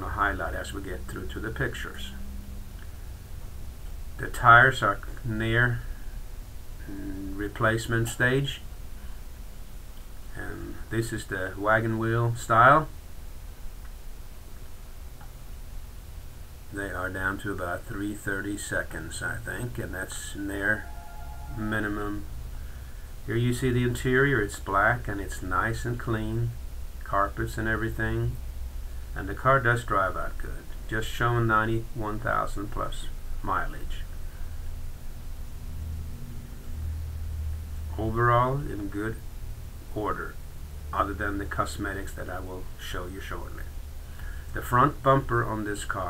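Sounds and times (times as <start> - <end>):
low hum and hiss: 0.0 - 46.0.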